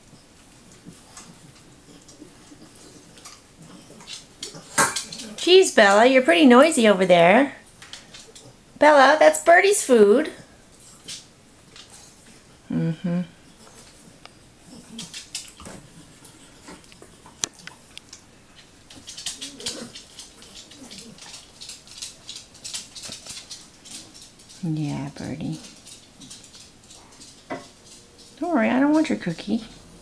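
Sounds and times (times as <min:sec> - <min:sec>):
pet eating crunching: 0:00.0 - 0:08.8, 0:10.4 - 0:12.7, 0:13.3 - 0:30.0
dog licking and snuffling: 0:00.4 - 0:08.6, 0:13.4 - 0:29.4.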